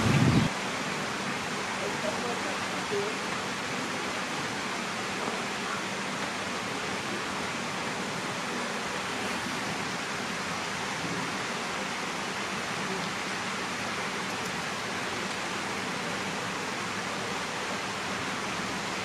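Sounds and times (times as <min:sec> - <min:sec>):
steady rushing noise: 0:00.0 - 0:01.5.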